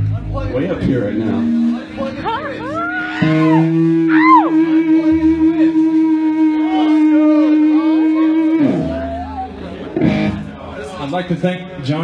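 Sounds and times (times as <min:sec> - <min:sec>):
electric guitar sustained note: 0:00.0 - 0:09.3.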